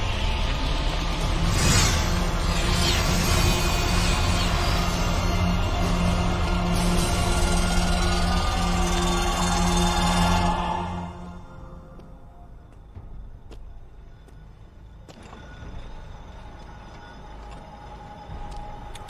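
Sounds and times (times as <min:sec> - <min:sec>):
dark film score music: 0:00.0 - 0:19.0.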